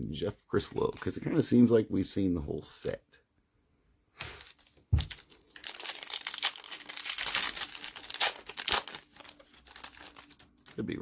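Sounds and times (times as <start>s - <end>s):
foil wrapper crinkling: 4.2s - 10.9s.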